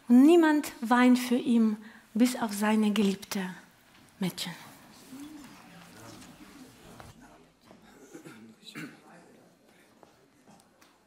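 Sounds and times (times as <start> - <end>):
low voices murmuring: 4.8 - 11.0.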